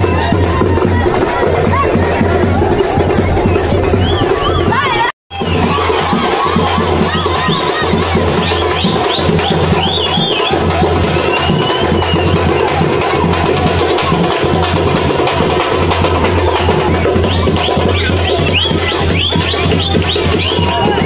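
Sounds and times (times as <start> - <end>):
crowd shouting and cheering: 0.0 - 21.0
festive music with fast drumming: 0.0 - 21.0.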